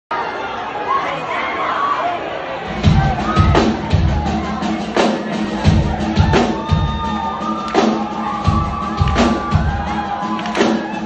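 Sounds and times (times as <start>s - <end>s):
crowd chattering and shouting: 0.1s - 11.0s.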